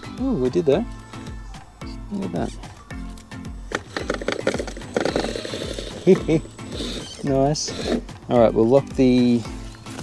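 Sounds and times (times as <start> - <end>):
clattering clicks and knocks on rock: 3.7 - 5.9
electric motor and drivetrain running: 3.7 - 8.2.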